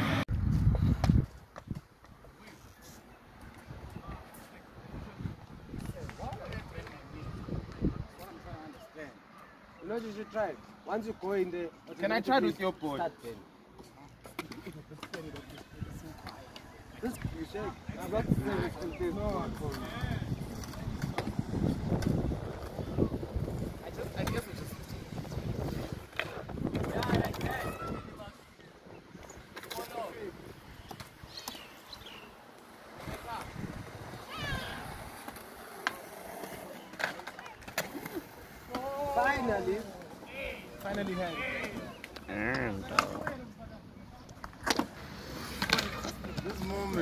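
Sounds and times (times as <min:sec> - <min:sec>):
skateboard wheels rolling on concrete: 0:00.0 - 0:47.0
faint people talking: 0:02.2 - 0:47.0
sharp skateboard clack: 0:40.8 - 0:43.5, 0:44.2 - 0:47.0.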